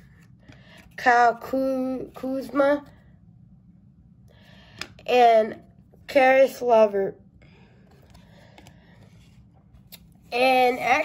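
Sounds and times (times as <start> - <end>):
handling of cards: 0.0 - 1.0, 7.8 - 10.9.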